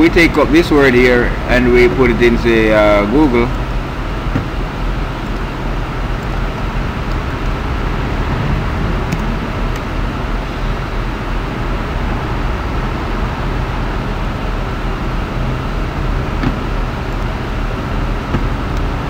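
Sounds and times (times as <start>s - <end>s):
low rumbling background noise: 0.0s - 19.0s.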